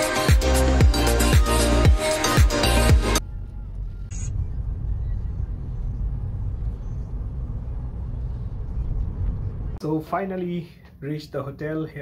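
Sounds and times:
music: 0:00.0 - 0:03.7
car engine and tyres rumbling: 0:03.2 - 0:09.8.

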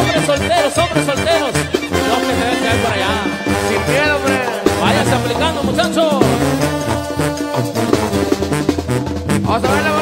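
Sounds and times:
brass band playing: 0:00.0 - 0:10.0
drums: 0:00.0 - 0:10.0.

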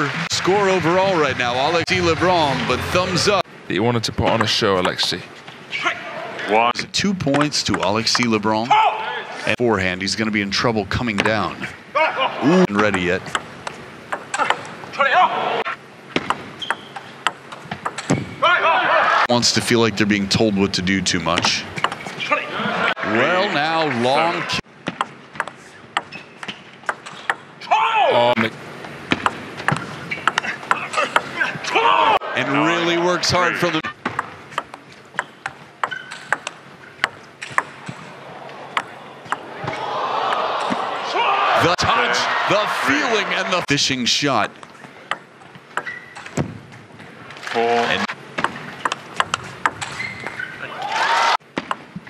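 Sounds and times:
crowd cheering: 0:00.0 - 0:03.4, 0:14.3 - 0:15.8, 0:18.4 - 0:19.7, 0:22.2 - 0:24.6, 0:30.4 - 0:33.9, 0:38.0 - 0:43.8, 0:50.6 - 0:51.4
voices reacting: 0:11.2 - 0:13.2, 0:14.3 - 0:15.8, 0:18.4 - 0:21.6, 0:22.2 - 0:24.6, 0:30.4 - 0:34.0, 0:38.1 - 0:44.5
table tennis ball clicks: 0:34.0 - 0:38.0.

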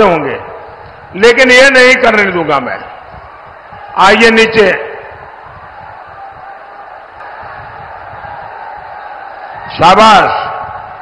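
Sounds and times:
murmur of crowd voices: 0:02.5 - 0:11.0.

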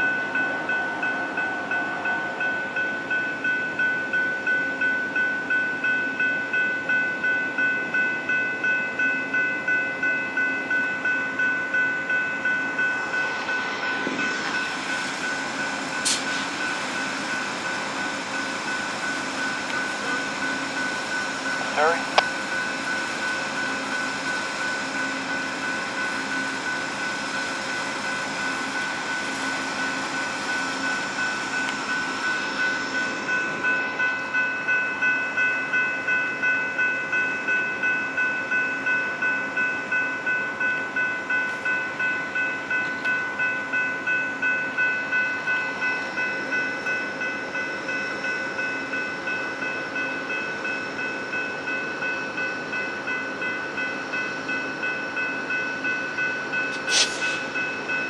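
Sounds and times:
crossing bell ringing: 0:00.0 - 0:58.0
diesel train idling hum: 0:00.0 - 0:58.0.

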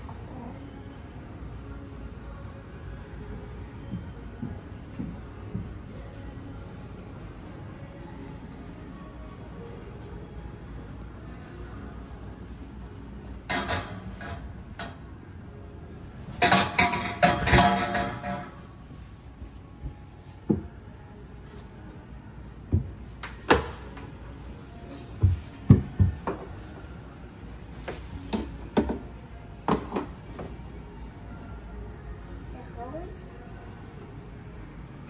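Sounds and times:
faint background music: 0:00.0 - 0:35.0.

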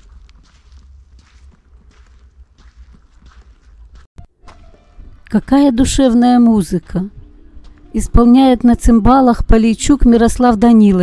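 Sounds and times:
faint footsteps outdoors: 0:00.0 - 0:11.0
steady low rumble: 0:04.7 - 0:10.0.

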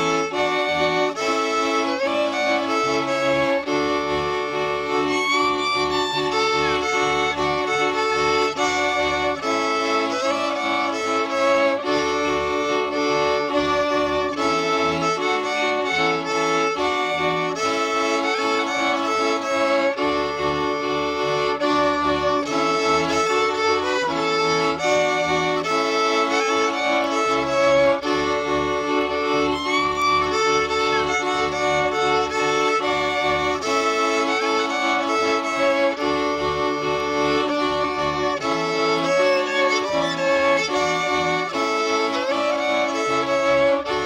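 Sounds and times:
background instrumental music: 0:00.0 - 0:44.0.

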